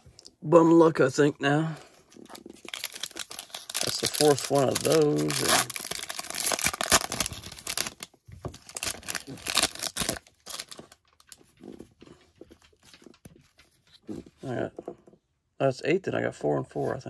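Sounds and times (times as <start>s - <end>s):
cards and wrapper rustling: 1.7s - 14.5s
plastic wrapper tearing and crinkling: 2.1s - 11.4s.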